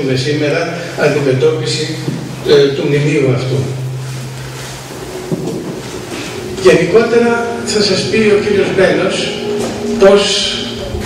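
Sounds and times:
rushing room noise: 0.0s - 11.0s.

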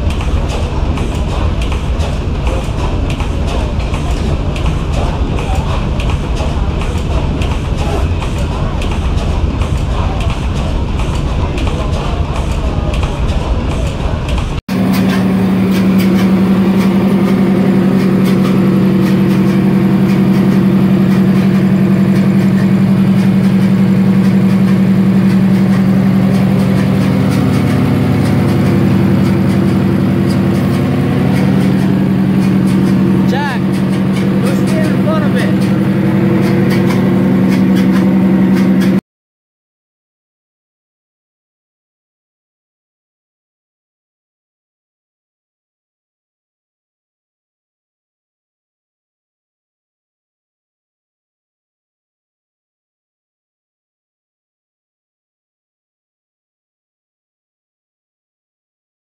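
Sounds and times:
diesel engine low hum: 0.0s - 39.0s
stationary engine rhythmic beat: 0.0s - 39.0s.

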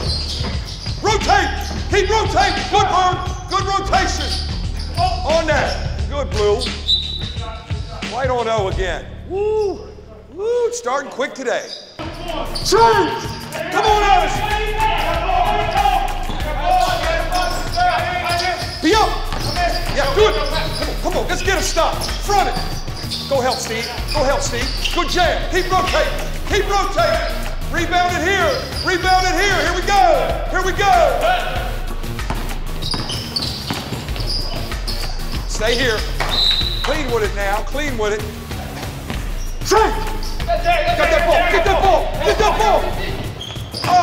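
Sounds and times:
shoes squeaking on hardwood court: 0.0s - 7.8s, 11.6s - 13.6s, 15.6s - 26.3s, 28.1s - 29.6s, 32.2s - 37.7s, 38.3s - 44.0s
basketball bouncing on floor: 19.0s - 20.9s, 32.2s - 34.6s.

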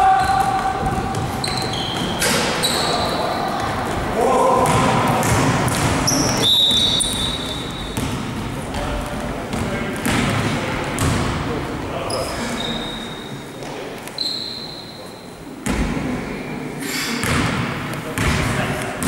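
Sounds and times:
sneakers squeaking on floor: 0.0s - 4.0s, 4.6s - 8.8s, 12.0s - 15.4s
players calling out: 0.0s - 8.0s
basketball bouncing on court: 0.1s - 2.4s, 3.6s - 11.4s, 17.2s - 18.5s.

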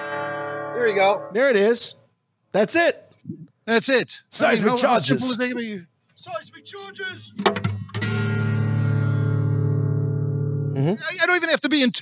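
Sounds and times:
guitar chord ringing: 0.0s - 1.4s, 7.6s - 10.8s.

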